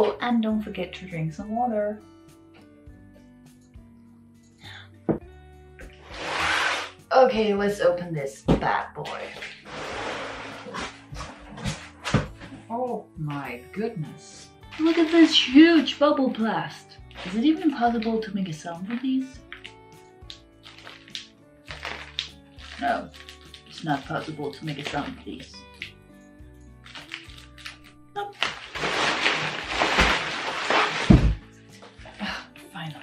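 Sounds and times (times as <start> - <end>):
quiet background music: 0.0 - 33.0
bubble wrap crinkling: 14.6 - 15.9, 17.0 - 17.8, 18.8 - 26.0, 26.8 - 32.4.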